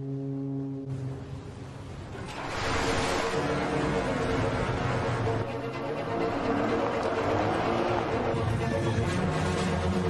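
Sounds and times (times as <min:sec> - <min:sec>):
ship's horn blast: 0:00.0 - 0:01.6.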